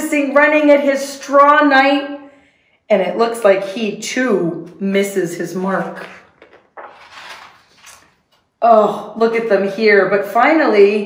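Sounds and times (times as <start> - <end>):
book page turning: 5.6 - 8.5.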